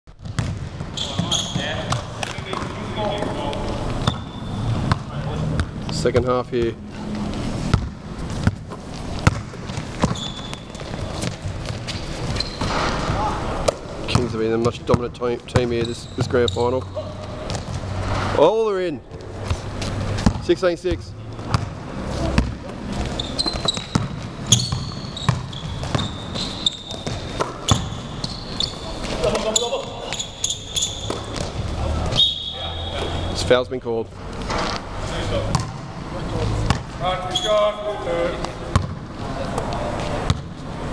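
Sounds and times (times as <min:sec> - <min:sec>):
basketball bouncing on gym floor: 0:00.1 - 0:06.8, 0:07.6 - 0:16.6, 0:17.2 - 0:18.0, 0:19.1 - 0:29.2, 0:30.1 - 0:31.7, 0:35.5 - 0:35.9, 0:36.7 - 0:37.0, 0:38.4 - 0:39.1, 0:40.2 - 0:40.6
players in a hall: 0:00.1 - 0:40.9.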